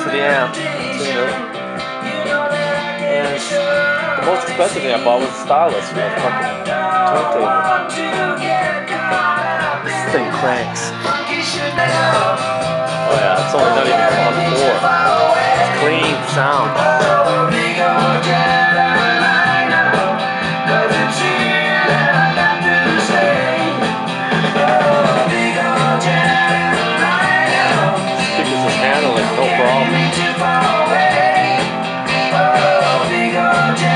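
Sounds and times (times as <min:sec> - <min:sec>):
rock song over speakers: 0:00.0 - 0:33.9.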